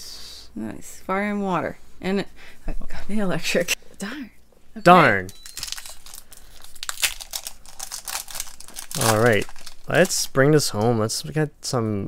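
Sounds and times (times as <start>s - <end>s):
foil wrapper tearing: 5.3s - 10.9s
foil wrapper crinkling: 5.3s - 11.0s.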